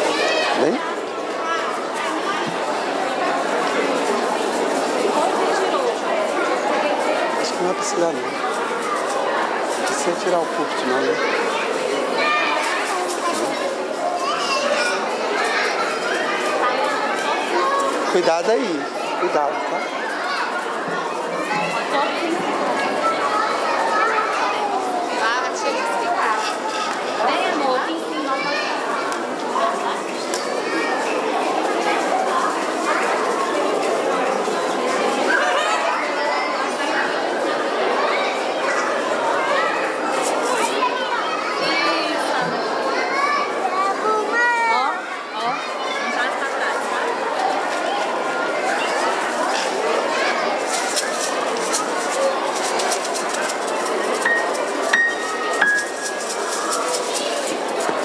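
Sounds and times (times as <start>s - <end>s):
adult voices: 0.0s - 58.0s
young children chattering: 0.0s - 58.0s.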